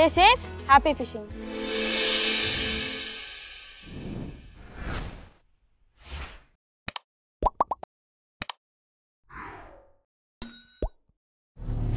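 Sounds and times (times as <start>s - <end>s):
soft whoosh: 1.4s - 5.3s
mouse double click: 8.4s - 8.6s
bell ding: 10.4s - 11.0s.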